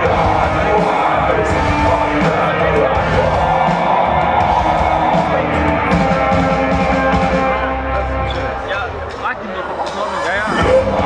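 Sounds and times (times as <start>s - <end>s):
hard rock band playing: 0.0s - 11.0s.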